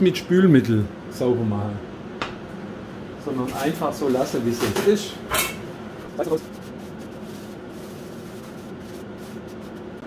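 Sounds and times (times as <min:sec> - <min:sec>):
low background hum: 0:00.0 - 0:10.0
paper towel rustling: 0:06.0 - 0:10.0.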